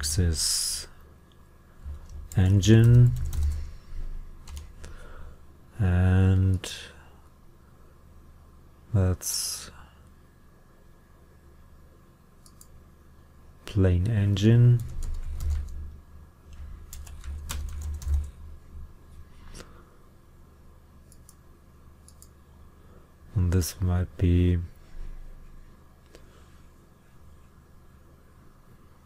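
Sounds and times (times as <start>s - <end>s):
computer keyboard typing: 1.9s - 3.7s, 4.4s - 4.8s, 14.7s - 18.5s.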